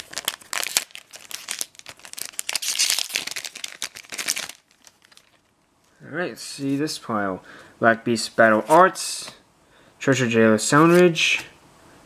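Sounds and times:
wrapper crinkling and tearing: 0:00.0 - 0:05.5.

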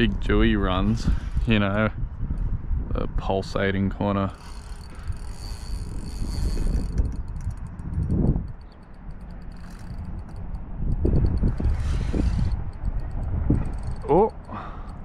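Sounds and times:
fishing reel ticking as cranked: 0:04.2 - 0:15.0.

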